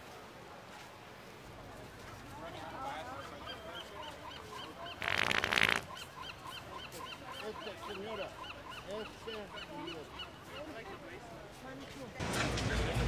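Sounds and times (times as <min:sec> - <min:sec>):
prank fart sound: 0:05.0 - 0:05.8.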